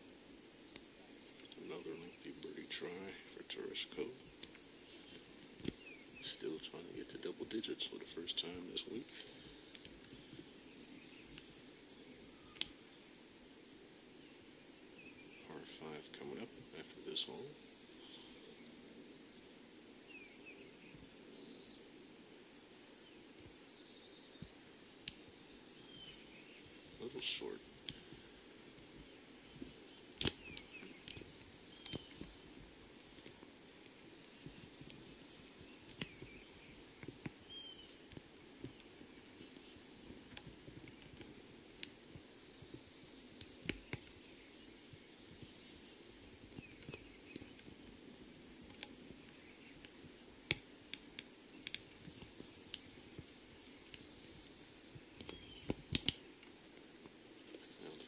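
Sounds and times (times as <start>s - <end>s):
high-pitched insect drone: 0.0s - 58.0s.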